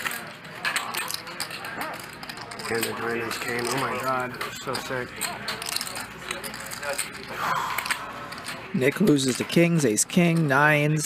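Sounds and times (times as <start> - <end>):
poker chips clicking: 0.0 - 11.0.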